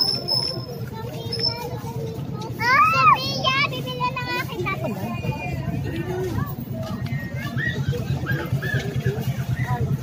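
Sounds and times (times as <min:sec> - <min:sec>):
market chatter and bustle: 0:00.0 - 0:10.0
child's high-pitched call: 0:01.0 - 0:04.4.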